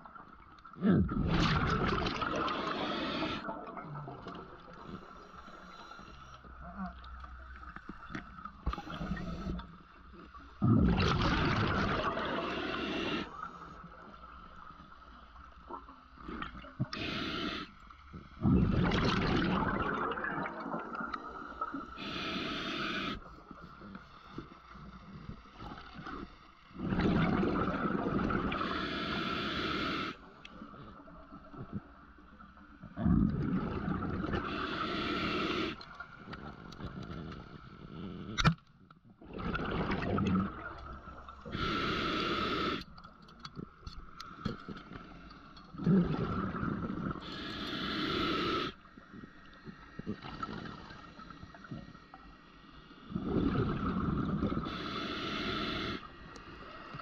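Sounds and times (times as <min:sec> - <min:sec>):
exhaled bubbles and regulator hiss: 0:00.0 - 0:38.5, 0:39.2 - 0:57.0.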